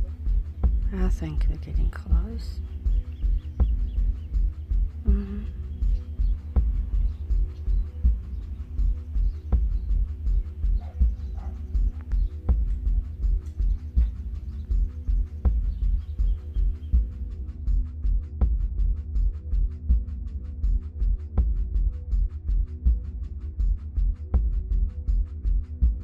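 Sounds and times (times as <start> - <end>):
instrumental music with pulsing beat: 0.0 - 26.0.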